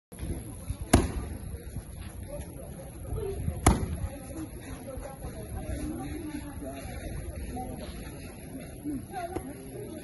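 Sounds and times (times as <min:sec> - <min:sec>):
soft low thuds: 0:03.5 - 0:04.2.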